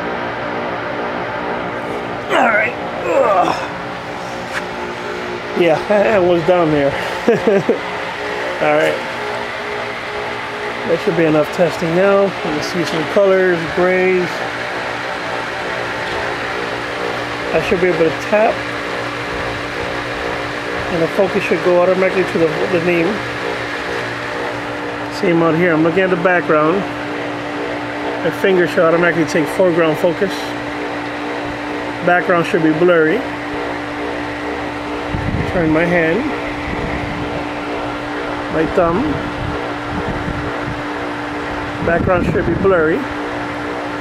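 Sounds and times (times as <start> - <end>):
air conditioner motor hum: 0.0 - 44.0
fan noise: 0.0 - 44.0.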